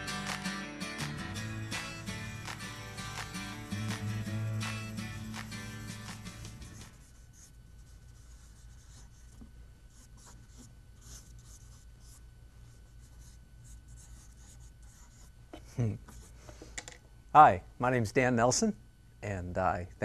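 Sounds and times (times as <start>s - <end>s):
steady low hum: 1.2s - 20.0s
drawing tool scratching paper: 2.4s - 9.4s.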